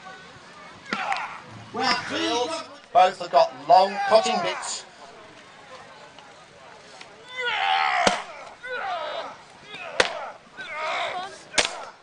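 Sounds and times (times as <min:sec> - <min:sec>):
people calling out: 0:00.4 - 0:02.7, 0:03.6 - 0:04.9, 0:07.2 - 0:12.0.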